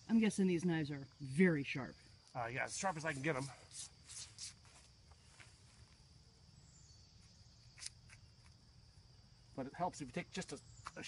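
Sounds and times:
high-pitched insect drone: 0:00.0 - 0:11.0
faint rustles or scrapes: 0:02.7 - 0:06.0.

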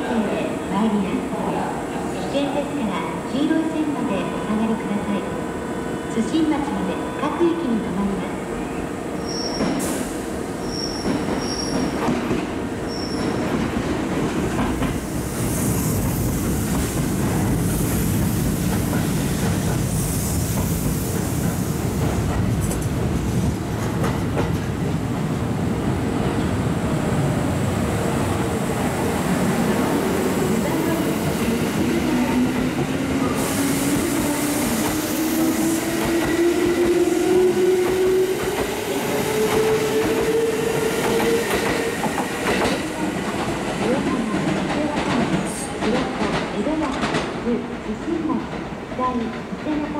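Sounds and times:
train wheel and rail noise: 0:00.0 - 0:49.9.

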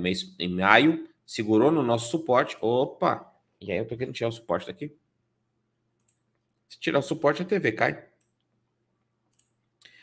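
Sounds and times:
computer mouse clicks: 0:06.0 - 0:06.5, 0:08.2 - 0:08.5, 0:09.3 - 0:10.0.

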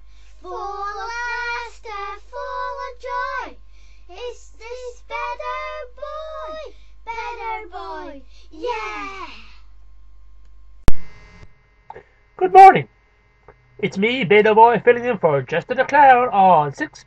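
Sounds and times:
child singing: 0:00.4 - 0:09.4.

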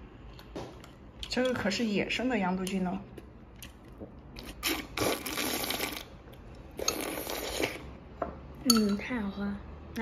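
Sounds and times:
child slurping soup: 0:04.6 - 0:06.1, 0:06.7 - 0:08.0.

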